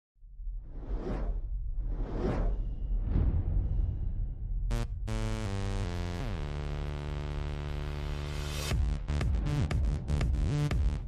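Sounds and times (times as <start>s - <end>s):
whoosh over deep rumble: 0.3s - 5.0s.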